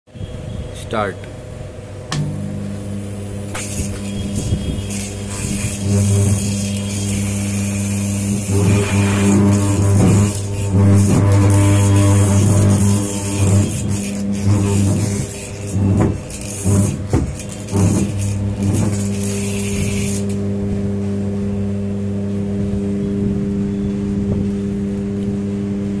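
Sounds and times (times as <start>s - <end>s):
electromagnet humming: 1.9s - 26.0s
rotor buzz and clicks: 2.1s - 23.2s.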